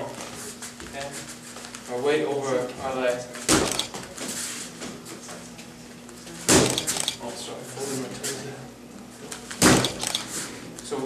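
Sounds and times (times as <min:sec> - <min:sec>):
gloved punch smacking pad: 0:03.5 - 0:04.0, 0:06.5 - 0:07.0, 0:09.6 - 0:10.3.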